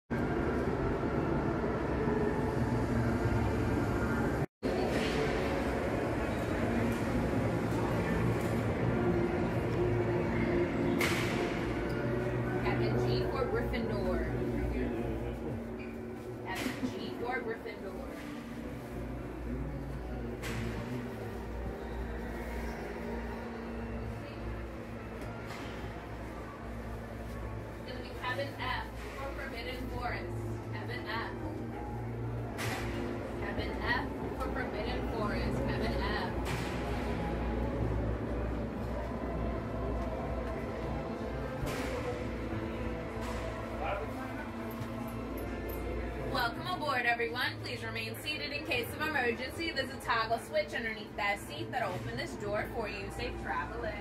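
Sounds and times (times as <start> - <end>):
station hall rumbling ambience: 0.1 - 54.0.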